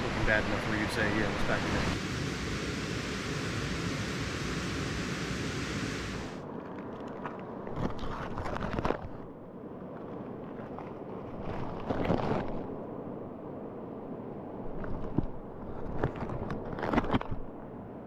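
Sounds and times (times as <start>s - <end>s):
steady rushing noise: 0.0s - 6.5s
nylon gear rustling and crinkling: 6.5s - 12.7s.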